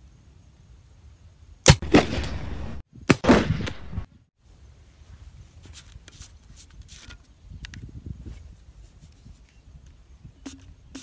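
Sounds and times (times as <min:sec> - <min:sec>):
homemade pistol shots: 0:01.6 - 0:04.1.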